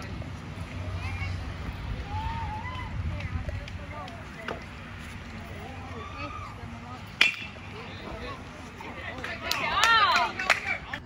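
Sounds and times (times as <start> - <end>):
crowd chatter: 0.0 - 11.0
bat hitting baseball: 7.2 - 7.6.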